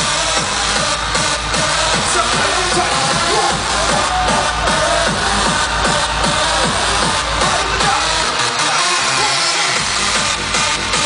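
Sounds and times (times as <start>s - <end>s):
loud hardstyle dance music: 0.0s - 11.0s.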